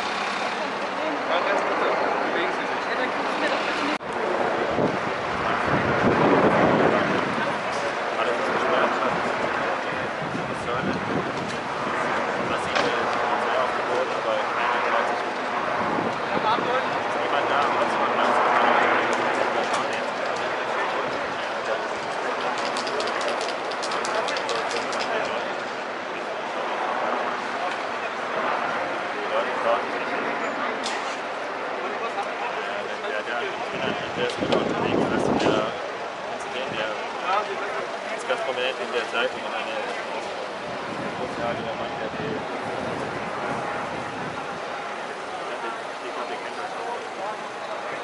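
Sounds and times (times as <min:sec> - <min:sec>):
indistinct chatter of voices: 0:00.0 - 0:48.0
street noise: 0:00.0 - 0:48.0
traffic noise: 0:00.0 - 0:48.0.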